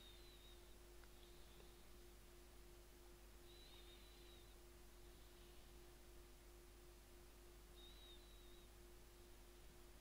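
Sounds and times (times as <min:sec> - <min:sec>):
faint high-pitched tone: 0:00.0 - 0:10.0
steady low hum: 0:00.0 - 0:10.0.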